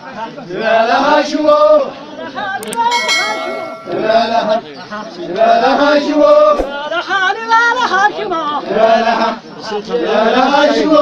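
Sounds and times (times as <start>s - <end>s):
men chanting together: 0.1s - 2.0s, 8.6s - 11.0s
bright chime: 2.7s - 4.4s.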